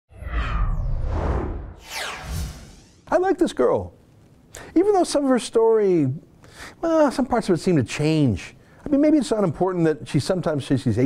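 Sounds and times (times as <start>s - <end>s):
swoosh falling in pitch: 0.1s - 3.1s.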